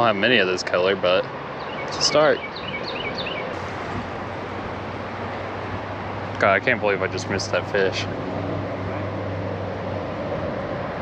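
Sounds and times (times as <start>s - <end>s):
wind noise on microphone: 2.9s - 11.0s
low hum: 3.5s - 11.0s.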